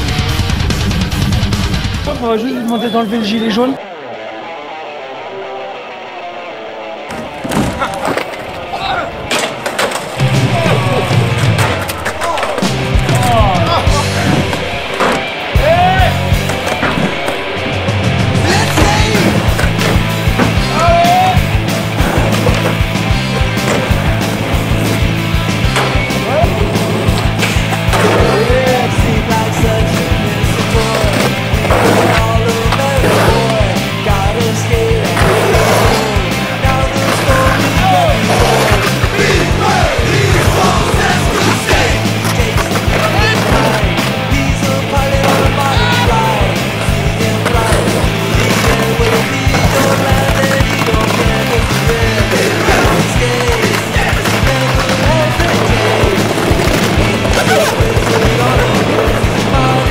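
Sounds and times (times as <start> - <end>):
music with repeating bass line: 0.0 - 2.2, 12.6 - 14.8, 17.4 - 59.9
skateboard wheels rolling on concrete: 6.6 - 59.9.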